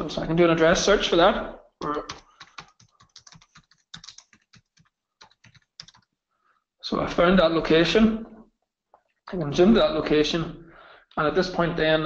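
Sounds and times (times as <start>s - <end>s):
typing on computer keyboard: 1.8s - 6.2s.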